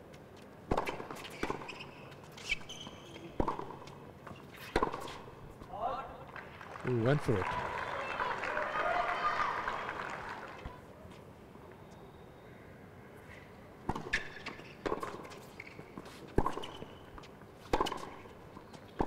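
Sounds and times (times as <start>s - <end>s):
tennis ball hits by rackets: 0.7s - 1.8s, 3.4s - 5.3s, 13.8s - 18.3s.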